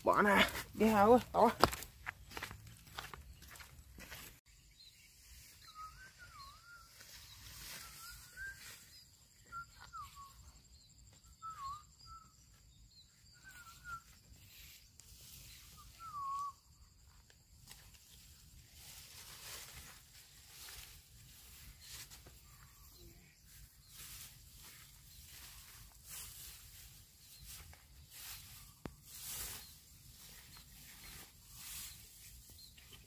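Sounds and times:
footsteps through grass: 0.0 - 10.5, 12.5 - 33.0.

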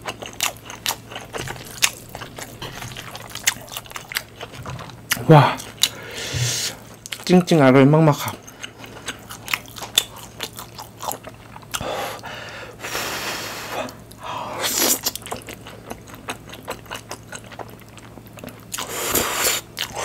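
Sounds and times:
wet chewing: 0.0 - 6.0, 8.3 - 11.8, 14.1 - 20.0
slurping noodles: 18.8 - 20.0.

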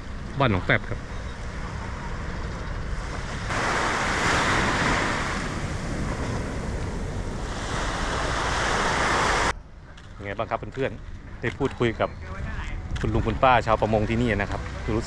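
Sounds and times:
wind rumbling on microphone: 0.0 - 15.0
waves breaking on a beach: 0.5 - 9.6.

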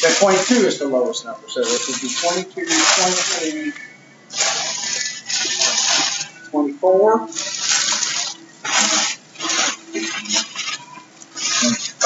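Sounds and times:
plastic bags crinkling: 0.0 - 0.9, 1.6 - 6.5, 7.3 - 12.0.

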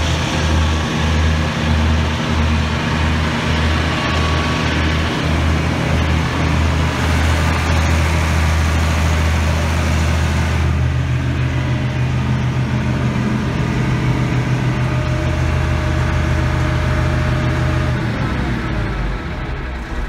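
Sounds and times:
diesel tractor idling: 0.0 - 20.0.

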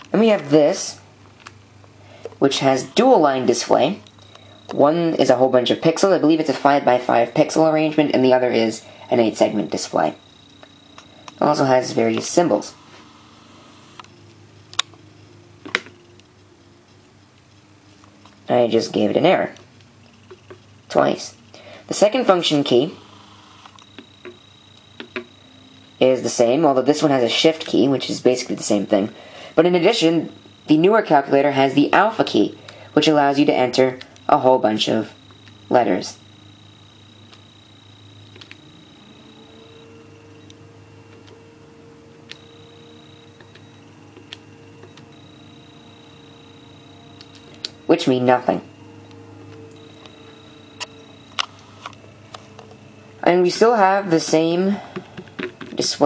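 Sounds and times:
faint steady hum: 0.0 - 56.0
sharp clicks: 38.3 - 38.6.

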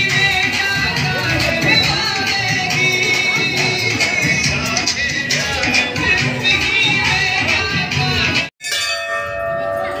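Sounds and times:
background music: 0.0 - 8.5
brass bells ringing: 8.6 - 10.0.

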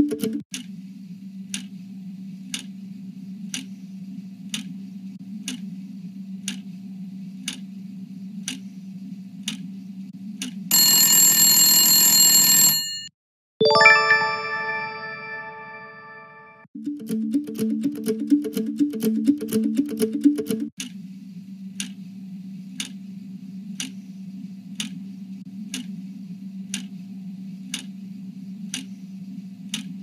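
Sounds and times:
ringing chime: 13.6 - 16.6.

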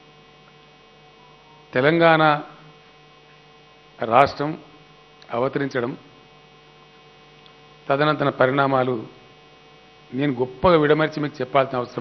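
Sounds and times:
steady electrical hum: 0.0 - 12.0
man speaking into microphone: 1.7 - 2.7, 4.0 - 6.1, 7.8 - 9.2, 10.1 - 12.0.

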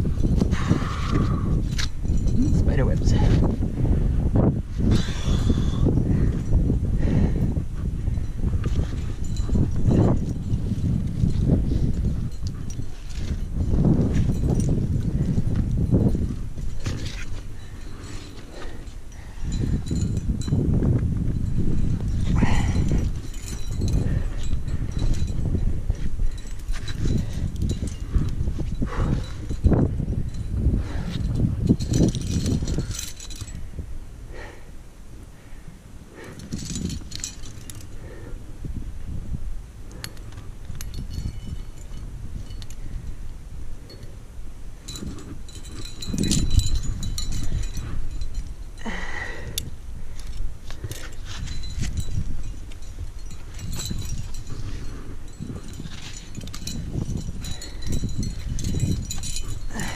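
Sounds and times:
climbing gear clinking: 0.0 - 59.9
low rumbling on microphone: 0.0 - 59.9.

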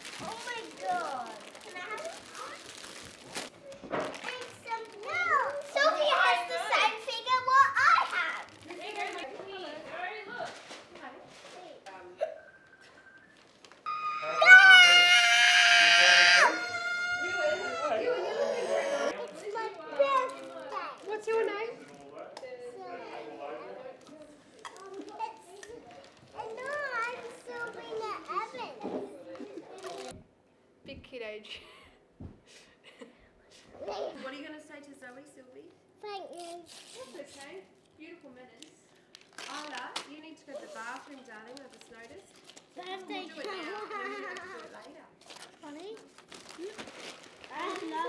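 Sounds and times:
young children talking and calling: 0.0 - 2.8, 3.4 - 10.6, 13.8 - 21.8, 22.5 - 30.2, 33.7 - 34.4, 35.9 - 37.6, 42.6 - 48.0
children vocalizing sing-song: 13.9 - 19.2.

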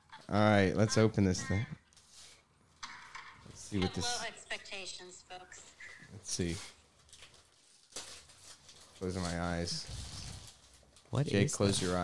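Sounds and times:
wrapping paper crinkling: 6.8 - 12.0.

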